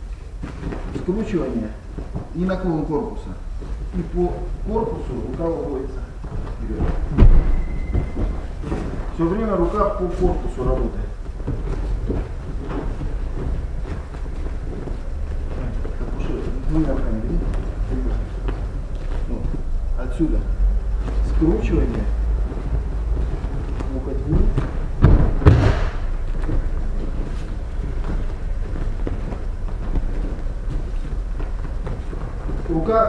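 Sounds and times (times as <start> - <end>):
steady low rumble: 0.0 - 33.0
bare feet thudding on mat: 0.2 - 2.5, 3.3 - 33.0
body thudding onto a mat: 6.2 - 9.3, 22.4 - 32.7.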